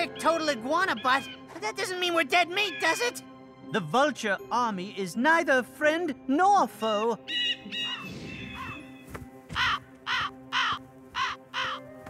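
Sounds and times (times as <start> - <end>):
background music: 0.0 - 12.0
cartoon vulture cawing: 7.3 - 8.8, 9.5 - 11.9.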